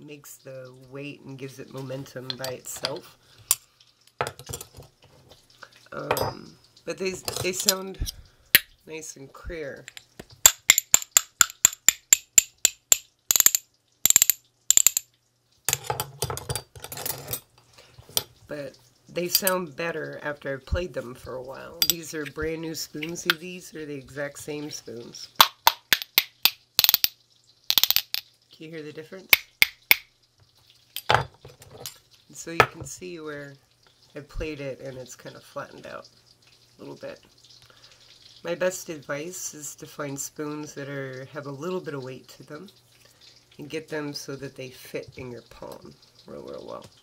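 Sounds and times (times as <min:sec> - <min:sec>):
steel spoons clicking percussion: 0:09.9 - 0:15.1, 0:27.7 - 0:28.2.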